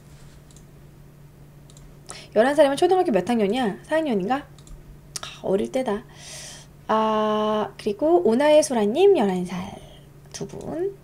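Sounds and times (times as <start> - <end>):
steady low hum: 0.0 - 11.0
faint clicks: 0.4 - 0.7, 1.6 - 1.9, 4.6 - 5.3.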